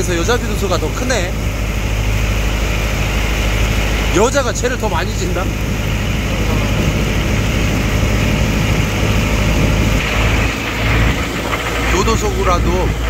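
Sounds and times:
boat engine droning: 0.0s - 13.0s
passing water: 0.0s - 13.0s.

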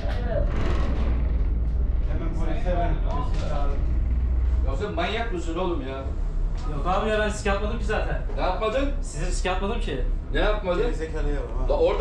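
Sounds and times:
low steady rumble: 0.0s - 12.0s
muffled men talking: 2.1s - 4.0s.

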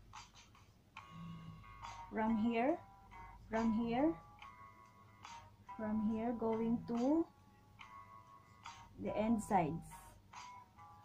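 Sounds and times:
quiet background music: 0.0s - 11.0s.

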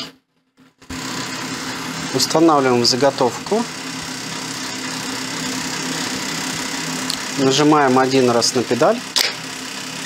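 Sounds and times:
sewing machine motor humming: 0.8s - 10.0s.

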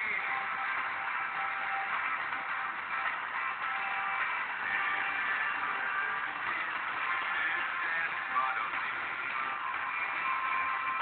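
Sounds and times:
faint radio music: 0.0s - 11.0s.

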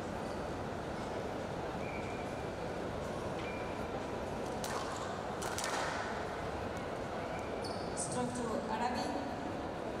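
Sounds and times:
indoor hall noise: 0.0s - 10.0s.

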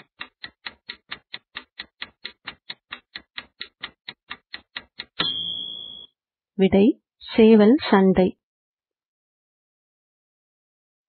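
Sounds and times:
fast clock ticking: 0.0s - 6.0s
ringing chime: 5.2s - 6.1s.

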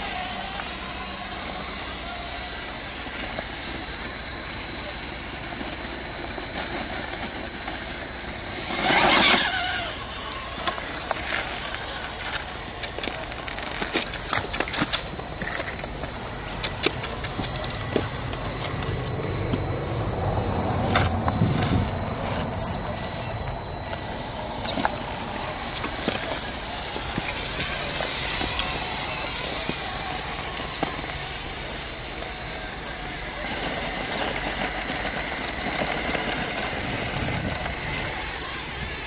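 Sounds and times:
electric drivetrain whine: 0.0s - 39.0s.

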